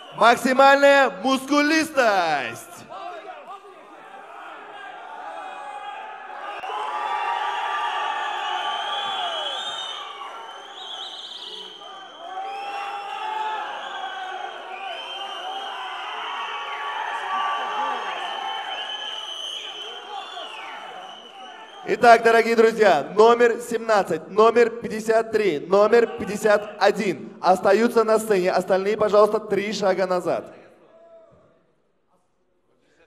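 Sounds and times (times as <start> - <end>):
audience shouting and cheering: 1.9 - 10.8, 11.5 - 22.0.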